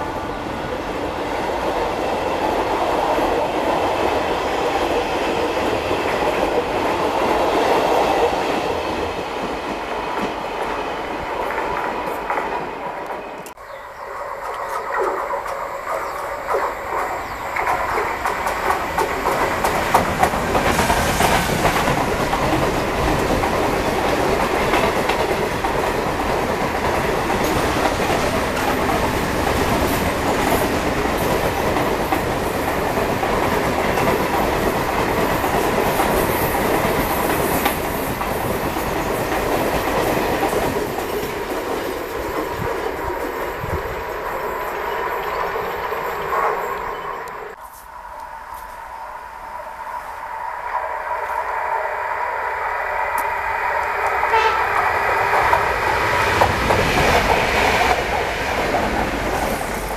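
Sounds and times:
freight train wheels rumbling: 0.0s - 59.9s.

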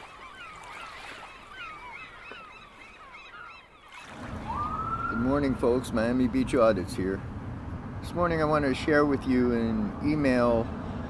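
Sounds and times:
seagulls calling: 0.0s - 6.2s
ocean waves: 0.0s - 6.6s.

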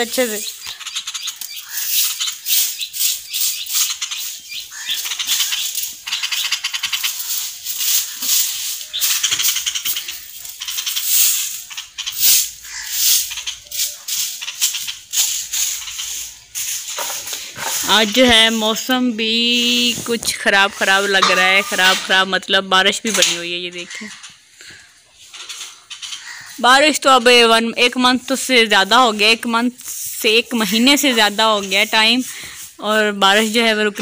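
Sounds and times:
broom sweeping dirt and leaves: 1.4s - 22.3s, 27.3s - 34.0s.

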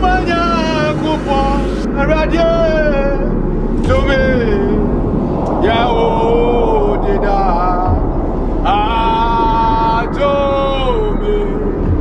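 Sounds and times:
man singing gliding notes: 0.0s - 12.0s
steady low rumble: 0.0s - 12.0s.

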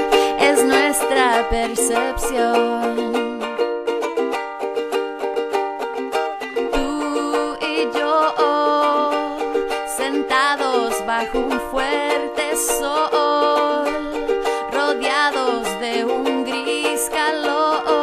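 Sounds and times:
woman singing: 0.0s - 3.6s, 6.6s - 18.0s
ukulele strumming: 0.0s - 18.0s.

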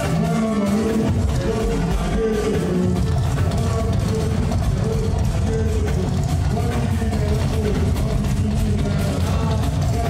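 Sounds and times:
drum kit beat: 0.0s - 10.0s
live band playing dance music: 0.0s - 10.0s.

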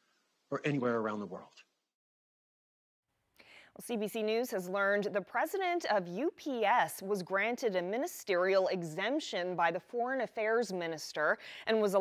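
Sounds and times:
soft breath: 3.4s - 3.8s
woman speaking: 3.8s - 12.0s.

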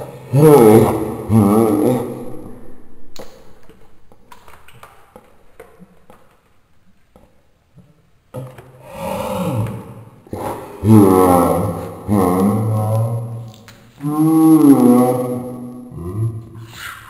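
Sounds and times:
person's voice: 0.0s - 2.6s, 10.3s - 17.0s
drawn-out voice sound: 0.0s - 2.9s, 8.9s - 17.0s.

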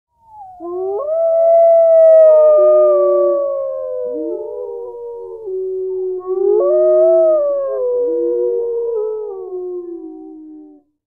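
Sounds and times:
chorus of long howls: 0.2s - 10.8s.

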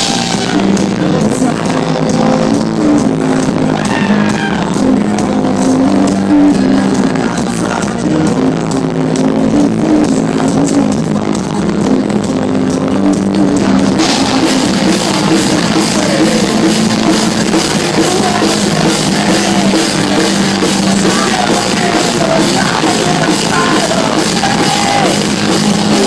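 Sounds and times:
distorted guitars: 0.0s - 26.0s
metal band playing live: 0.0s - 26.0s
pounding drum kit: 0.0s - 26.0s.

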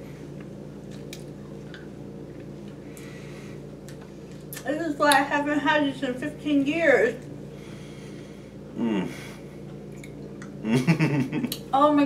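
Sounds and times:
steady low hum: 0.0s - 12.0s
soft breath: 7.5s - 9.6s.

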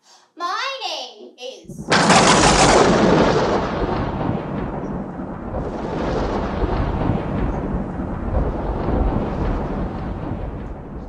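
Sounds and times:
rolling thunder rumble: 1.6s - 11.0s.

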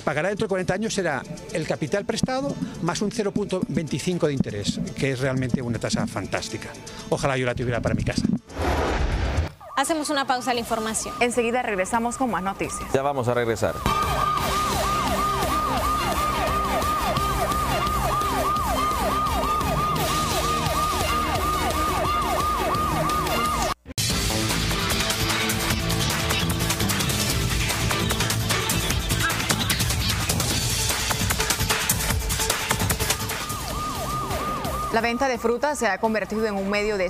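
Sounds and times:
electronic music: 0.0s - 8.6s, 9.6s - 36.5s
siren wail sound effect: 9.5s - 23.8s, 32.8s - 36.0s.

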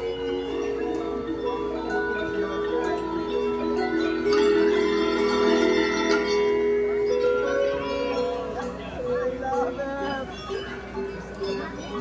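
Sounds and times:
marimba and mallet percussion music: 0.0s - 12.0s.

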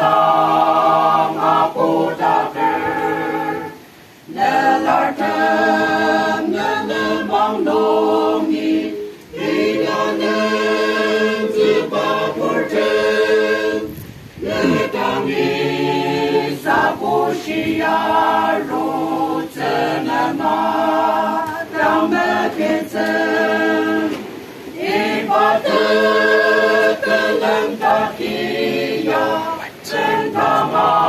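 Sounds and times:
choir singing a hymn: 0.0s - 31.0s.

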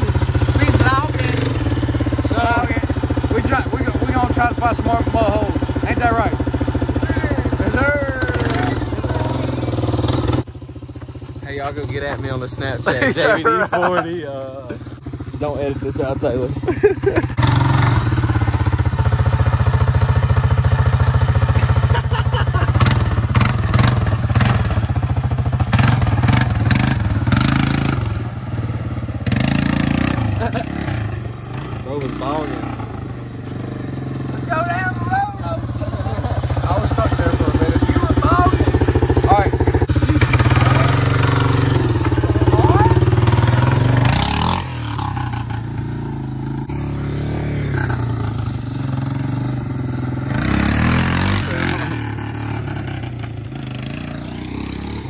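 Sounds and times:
atv engine running: 0.0s - 55.0s.

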